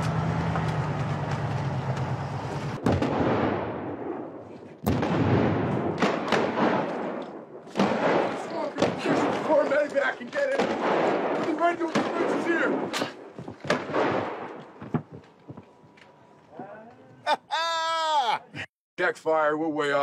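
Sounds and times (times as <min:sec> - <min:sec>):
sharp cracks and thuds: 0:02.8 - 0:04.0, 0:04.8 - 0:15.7
loud explosion blast: 0:02.8 - 0:07.2, 0:13.7 - 0:14.5
people shouting: 0:17.5 - 0:18.6.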